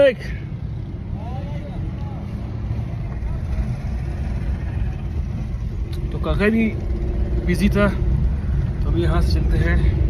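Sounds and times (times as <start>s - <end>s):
car engine and road rumble: 0.0s - 10.0s.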